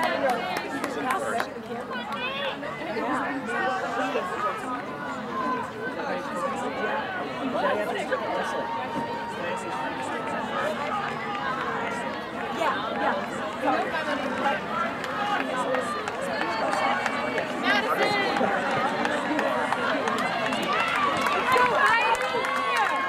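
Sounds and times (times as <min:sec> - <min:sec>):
crowd talking and calling out: 0:00.0 - 0:23.0.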